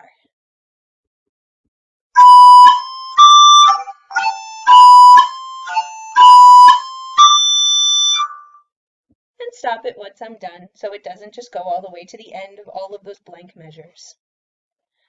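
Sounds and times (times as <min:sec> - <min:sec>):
synthesized recorder melody: 0:02.2 - 0:08.6.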